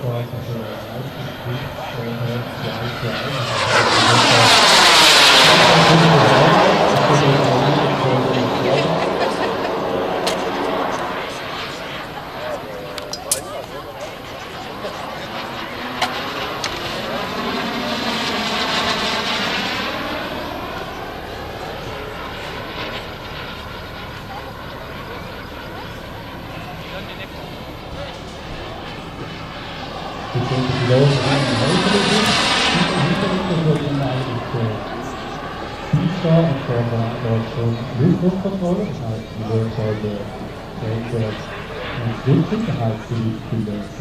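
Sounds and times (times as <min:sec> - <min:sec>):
model jet flying overhead: 0:00.0 - 0:44.0.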